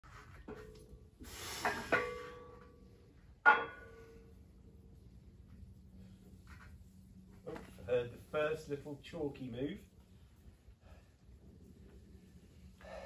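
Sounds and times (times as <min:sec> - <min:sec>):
weight plates clinking and clanging: 0:01.6 - 0:02.8, 0:03.4 - 0:04.2.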